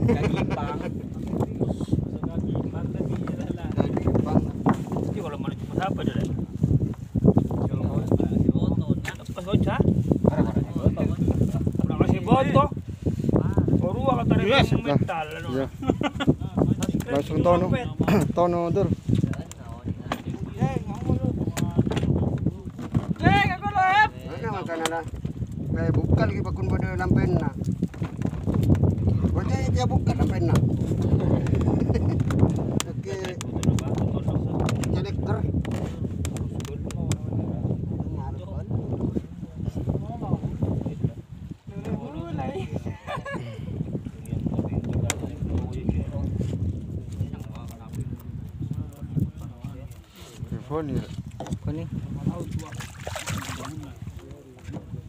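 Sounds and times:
low knocking and rumble of boat: 2.2 - 12.8, 13.7 - 39.1, 50.7 - 55.0
water slapping hull: 51.1 - 54.3.

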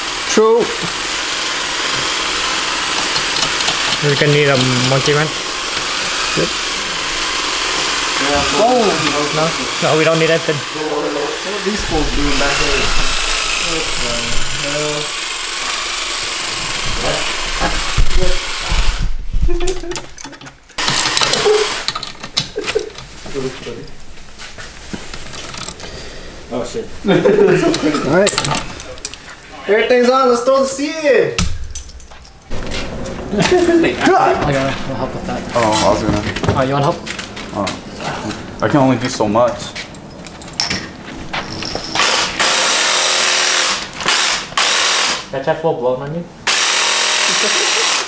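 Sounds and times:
ratchet wrench tightening bolt: 2.9 - 5.2.

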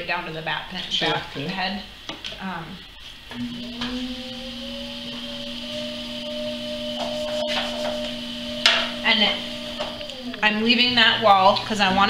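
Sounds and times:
potter's wheel humming: 2.6 - 12.0.

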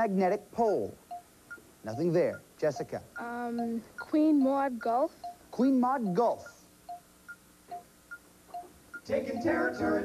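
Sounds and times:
alternating electronic beeps: 1.0 - 10.0.

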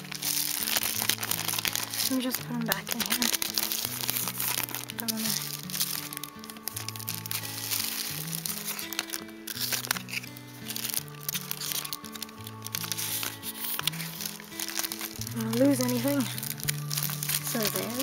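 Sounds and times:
background music of low notes: 0.0 - 18.0
plastic packaging crinkling: 0.0 - 18.0.

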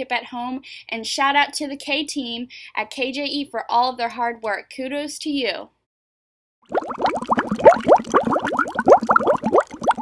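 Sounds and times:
bubbling bloops: 6.6 - 10.0.

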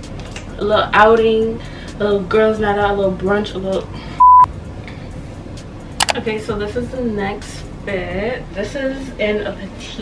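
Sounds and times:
censor bleep: 4.2 - 4.5.

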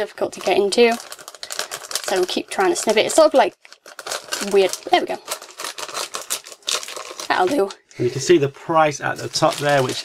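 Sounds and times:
plastic packaging crinkling: 0.0 - 7.8, 9.0 - 10.0.

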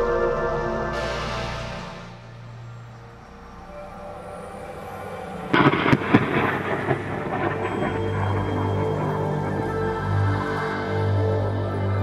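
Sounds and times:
thunder cracks and rumble: 5.3 - 12.0.

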